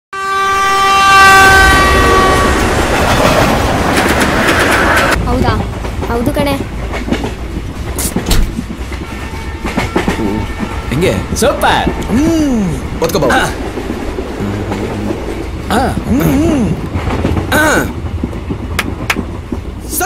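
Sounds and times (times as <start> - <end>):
locomotive horn: 0.1 - 2.8, 9.0 - 12.3, 14.4 - 15.5
rumble of passing train: 0.2 - 20.0
wheels clicking on rails: 13.0 - 20.0
person speaking: 14.4 - 16.8.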